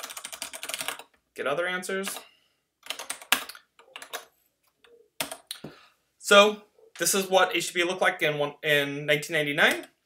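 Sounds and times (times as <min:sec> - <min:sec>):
keyboard keys clicking: 0:02.8 - 0:05.5.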